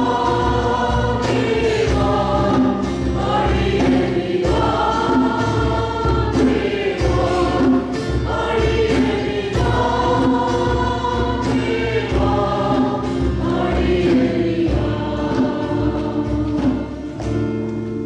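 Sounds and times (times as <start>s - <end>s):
congregation singing: 0.0s - 18.0s
instrumental accompaniment: 0.0s - 18.0s.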